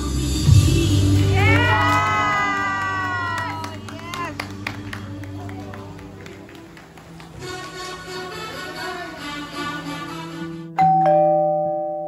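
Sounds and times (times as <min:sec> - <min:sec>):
background music: 0:00.0 - 0:12.0
two-note chime: 0:10.8 - 0:12.0.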